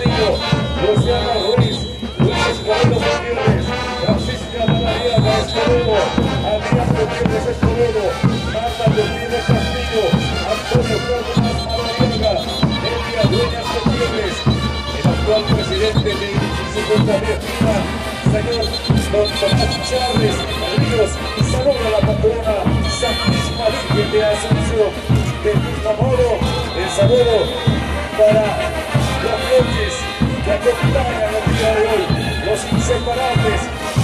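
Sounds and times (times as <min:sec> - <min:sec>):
steady drumbeat: 0:00.0 - 0:34.0
wind instruments playing melody: 0:00.0 - 0:34.0.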